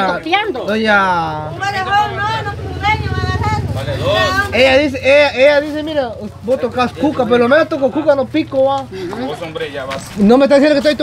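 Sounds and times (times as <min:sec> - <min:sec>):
voices talking: 0:00.0 - 0:11.0
vehicle engine rumble: 0:00.7 - 0:11.0.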